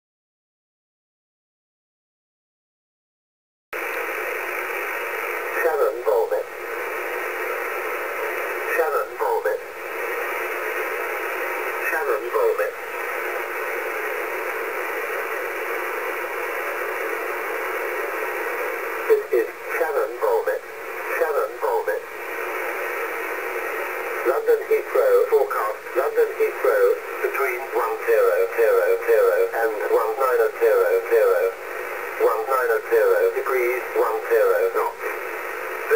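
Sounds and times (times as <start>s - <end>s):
shortwave radio hiss: 3.8s - 35.9s
radio voice: 5.4s - 7.7s, 8.3s - 10.3s, 11.5s - 13.6s, 18.9s - 22.8s, 23.6s - 35.9s.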